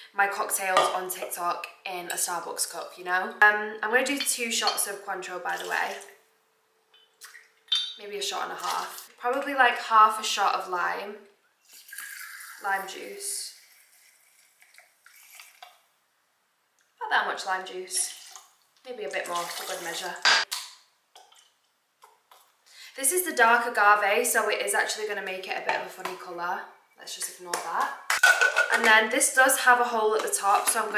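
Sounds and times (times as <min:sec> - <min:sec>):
glass clinking: 0:07.0 - 0:08.0.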